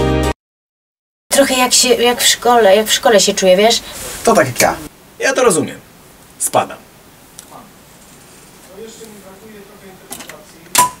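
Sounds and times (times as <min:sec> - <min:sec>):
sharp knock with ringing tone: 0:10.8 - 0:11.0.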